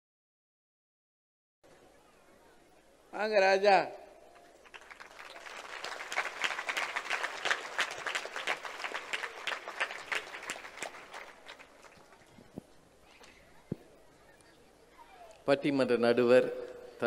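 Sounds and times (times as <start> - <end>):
audience applauding: 4.4 - 12.4.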